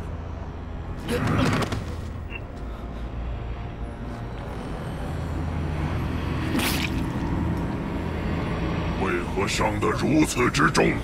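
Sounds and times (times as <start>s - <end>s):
low rumbling drone score: 0.0s - 11.0s.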